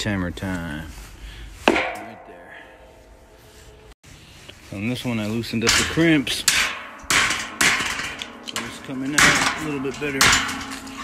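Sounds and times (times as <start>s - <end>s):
sledgehammer striking metal: 1.6s - 3.5s, 5.6s - 11.0s
metallic ringing: 1.7s - 3.9s, 5.5s - 11.0s.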